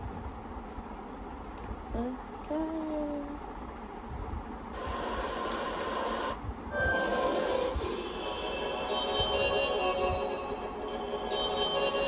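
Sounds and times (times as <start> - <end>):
rushing noise: 4.8 - 12.0
music tones: 6.7 - 12.0.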